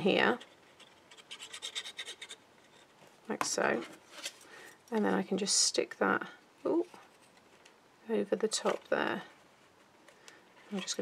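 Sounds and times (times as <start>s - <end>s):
glue nozzle scratching on cardstock: 0.7s - 2.4s.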